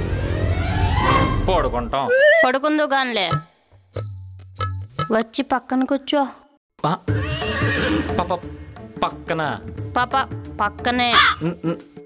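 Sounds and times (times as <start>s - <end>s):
background music with low bass: 7.1s - 12.0s.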